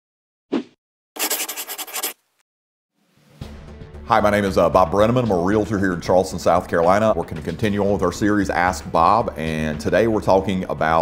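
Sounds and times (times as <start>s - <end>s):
fast rhythmic scratching: 1.2s - 2.2s.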